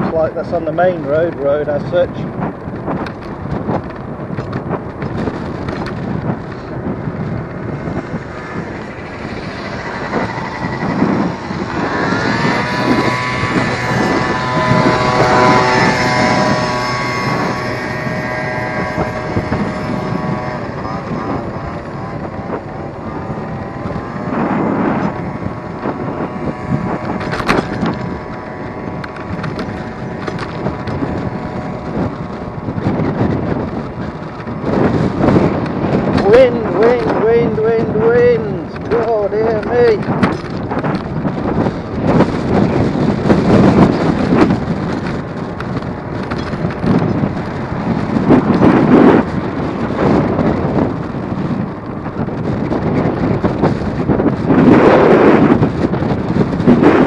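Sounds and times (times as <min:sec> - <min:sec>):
multi-tone whine: 0:00.0 - 0:57.0
road and traffic noise: 0:00.0 - 0:57.0
wind rushing on microphone: 0:00.0 - 0:57.0.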